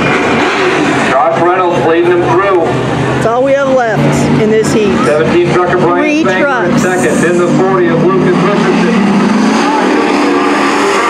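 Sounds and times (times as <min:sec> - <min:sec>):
race truck engines revving: 0:00.0 - 0:11.0.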